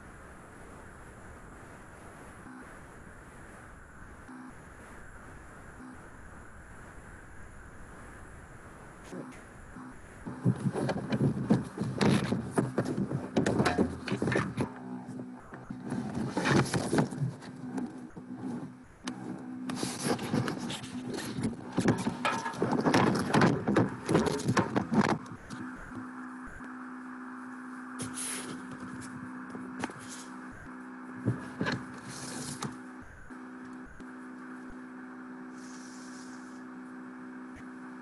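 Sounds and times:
microphone rubbing against clothing: 10.3s - 25.7s, 28.0s - 32.8s, 35.5s - 36.7s
handling bumps and knocks: 10.4s - 14.8s, 21.2s - 25.5s.

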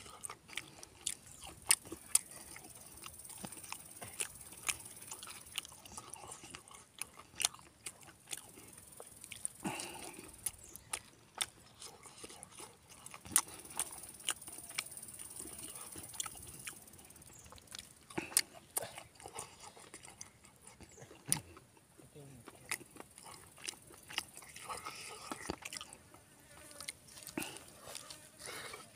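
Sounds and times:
person chewing and smacking: 0.0s - 28.9s.

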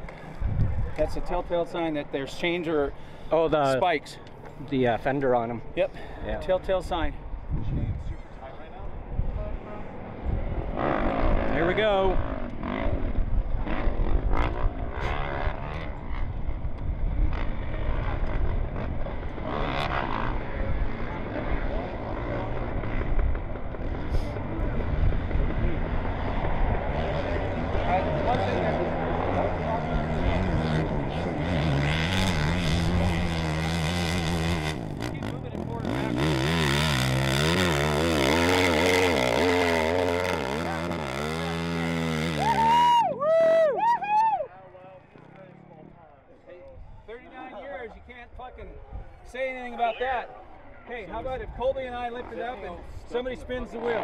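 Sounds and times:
motorcycle engine revving: 9.9s - 43.0s.

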